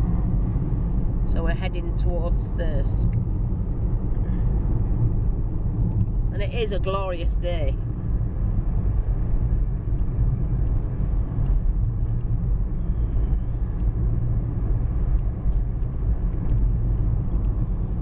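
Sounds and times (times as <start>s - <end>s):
car engine and tyre noise: 0.0s - 18.0s.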